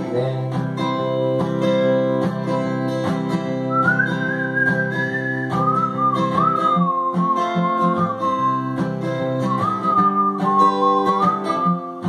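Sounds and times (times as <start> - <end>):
strummed acoustic guitar: 0.0 - 12.0
person whistling a melody: 3.7 - 12.0.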